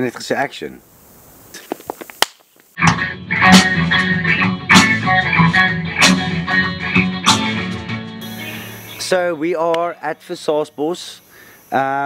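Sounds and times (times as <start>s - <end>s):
sharp snap: 2.2s - 3.0s, 9.6s - 9.9s
guitar music: 2.8s - 9.6s.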